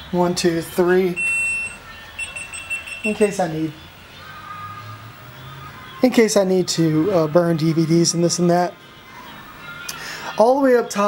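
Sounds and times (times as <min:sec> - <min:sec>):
high electronic beep: 0:01.1 - 0:03.8.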